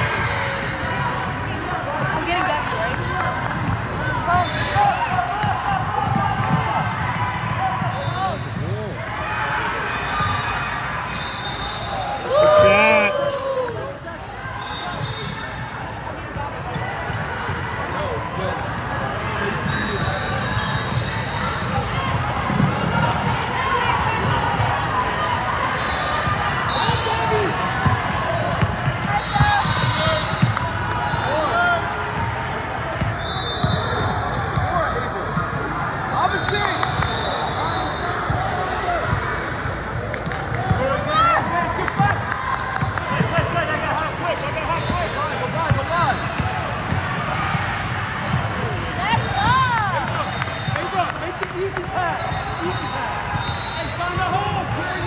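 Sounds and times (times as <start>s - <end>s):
sneaker squeaks: 0.4s - 1.4s, 2.6s - 5.1s, 6.0s - 13.1s, 14.0s - 23.8s, 24.8s - 31.5s, 32.5s - 41.2s, 44.3s - 47.2s, 48.2s - 51.1s, 51.8s - 55.0s
people calling out: 12.2s - 13.7s.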